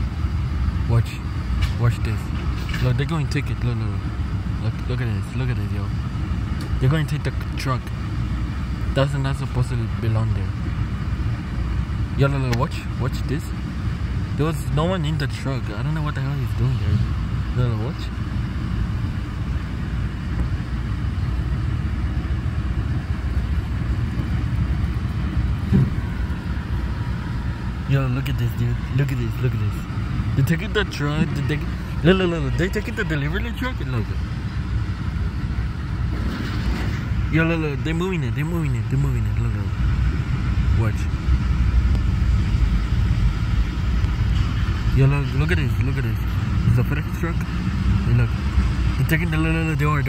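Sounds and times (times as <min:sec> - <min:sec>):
street traffic rumble: 0:00.0 - 0:50.0
vehicle engines idling: 0:00.0 - 0:50.0.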